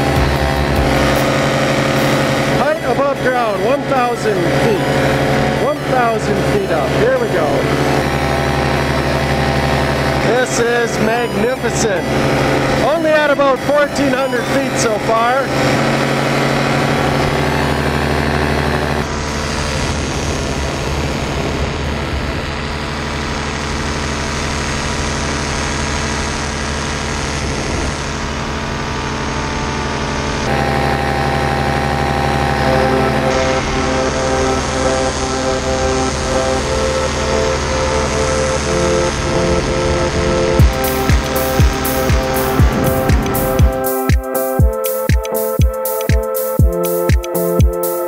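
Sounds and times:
drum hits: 0.0s - 2.6s, 40.6s - 48.0s
background music: 0.0s - 19.2s, 30.4s - 48.0s
paramotor engine droning: 0.0s - 48.0s.

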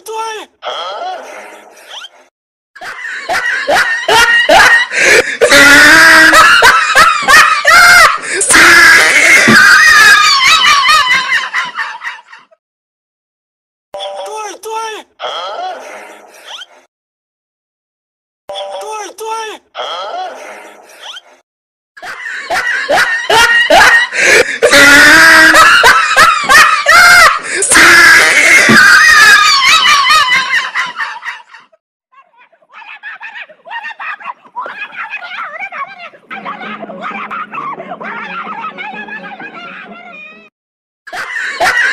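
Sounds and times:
high-pitched voices laughing: 2.8s - 12.4s, 22.0s - 40.5s, 41.1s - 41.9s.

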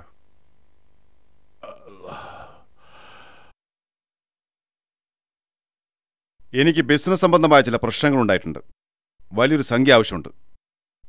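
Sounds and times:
faint room hiss: 0.0s - 3.5s
man gasping: 1.6s - 3.5s.

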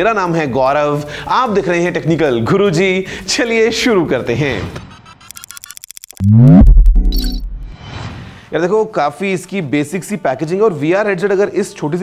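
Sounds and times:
quick digital ticks: 5.2s - 7.6s
sharp clicks: 5.3s - 7.5s
deep bass hit: 6.2s - 7.8s
sweeping synth tone: 6.2s - 7.8s.

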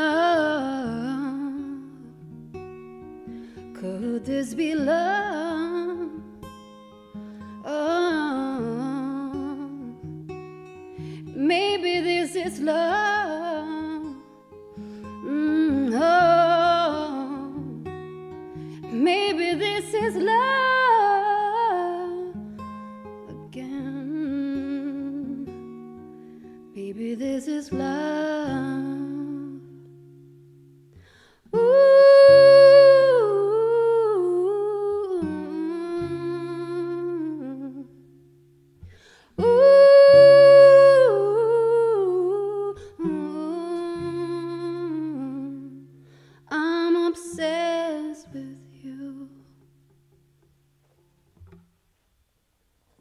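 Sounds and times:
woman singing wordless melody: 0.0s - 2.4s, 3.0s - 26.0s, 26.6s - 30.1s, 31.4s - 50.0s
acoustic guitar: 0.0s - 53.0s.

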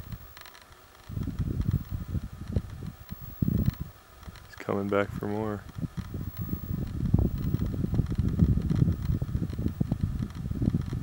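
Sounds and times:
wind rumble: 0.0s - 11.0s.

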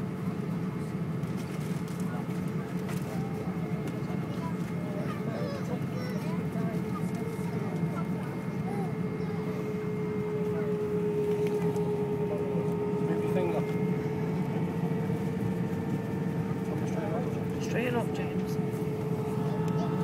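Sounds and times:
jet engines humming: 0.0s - 20.0s
passengers talking: 0.0s - 20.0s
steady engine whine: 0.0s - 20.0s.

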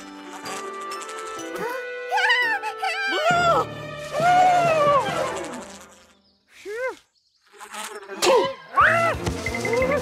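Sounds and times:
cartoon bee buzzing: 0.0s - 2.1s, 3.3s - 8.5s
cartoon character yelping: 2.1s - 5.3s.

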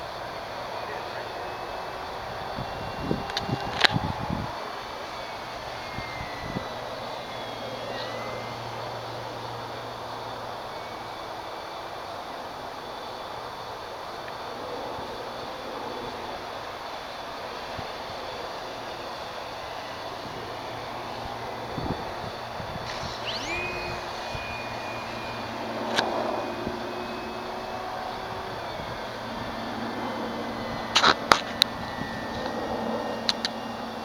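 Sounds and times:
electric model plane motor whine: 0.0s - 34.0s.

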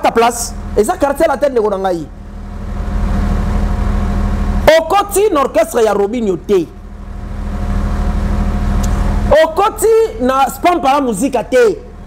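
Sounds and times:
motor running with low hum: 0.0s - 12.0s.

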